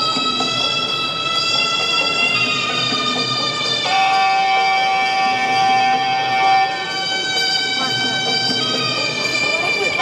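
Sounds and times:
reed wind instrument held notes: 0:00.0 - 0:10.0.

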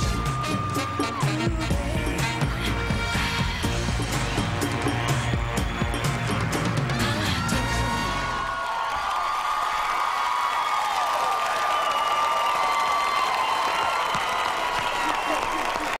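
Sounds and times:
high whoops and shouts: 0:00.0 - 0:01.4, 0:04.5 - 0:16.0
music: 0:00.0 - 0:08.6
audience cheering and applauding: 0:00.0 - 0:16.0.

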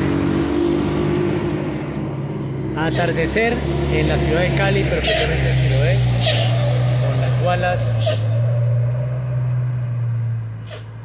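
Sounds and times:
jeep engine droning: 0:00.0 - 0:11.0.

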